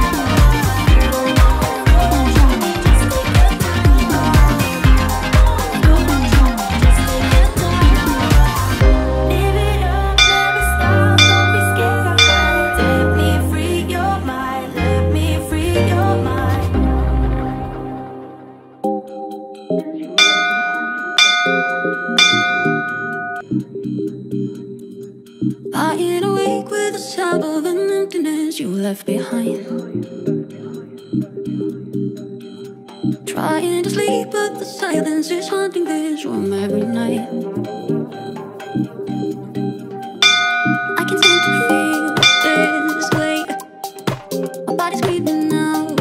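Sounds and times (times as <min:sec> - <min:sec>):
background music: 0:00.0 - 0:46.0
bell-like countdown chimes: 0:10.2 - 0:13.8, 0:20.2 - 0:23.4, 0:40.2 - 0:43.6.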